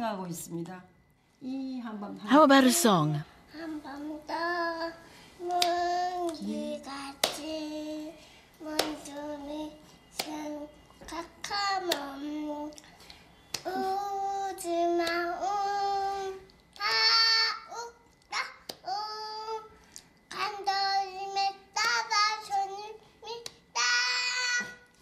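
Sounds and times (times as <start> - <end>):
girl singing: 3.5 - 12.9, 13.5 - 25.0.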